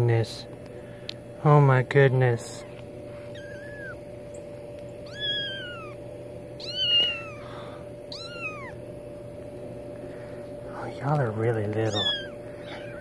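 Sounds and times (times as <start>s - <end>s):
kittens meowing: 2.5s - 9.0s, 11.6s - 13.0s.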